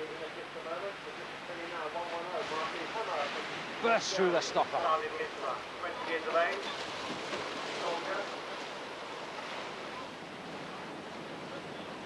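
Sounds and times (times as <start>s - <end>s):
rushing white water: 0.0s - 12.0s.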